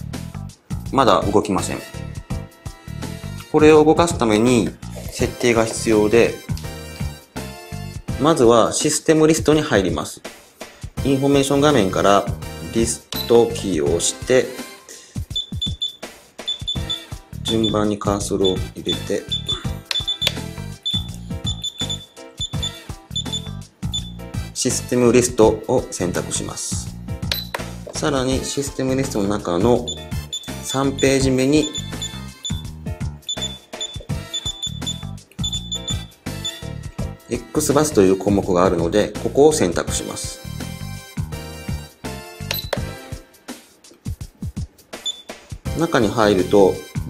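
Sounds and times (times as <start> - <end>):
background music with low beat: 0.0 - 8.3, 9.4 - 47.0
high-pitched key beeps: 13.2 - 13.6, 15.4 - 17.8, 18.4 - 18.6, 19.2 - 24.2, 27.3 - 27.6, 29.8 - 32.7, 33.3 - 36.7, 42.5 - 42.8, 45.0 - 45.4.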